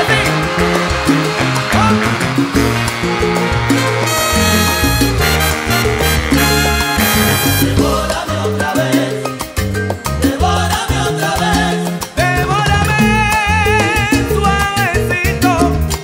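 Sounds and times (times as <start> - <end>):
salsa band playing: 0.0 - 16.0.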